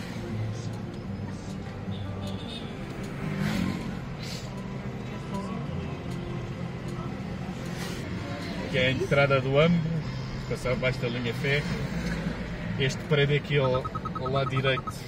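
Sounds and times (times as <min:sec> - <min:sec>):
car engine and tyres rumbling: 0:00.0 - 0:15.0.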